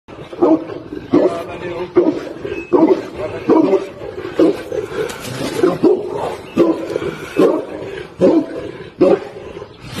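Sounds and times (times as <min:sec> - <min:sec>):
large dog barking deeply: 0:00.1 - 0:09.8.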